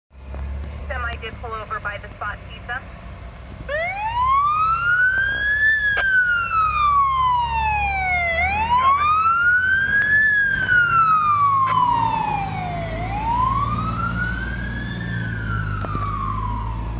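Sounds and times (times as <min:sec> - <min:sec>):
truck engine rumble: 0:00.1 - 0:16.9
fire engine siren wailing: 0:00.6 - 0:16.9.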